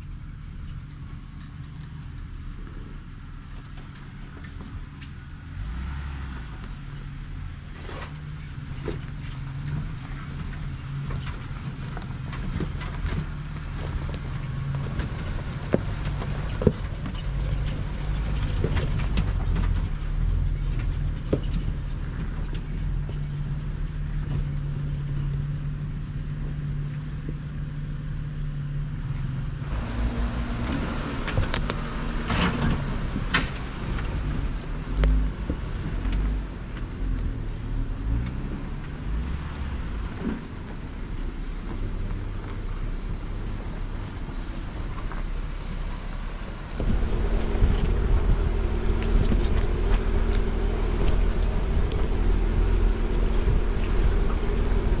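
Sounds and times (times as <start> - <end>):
off-road vehicle engines in low gear: 0.0 - 55.0.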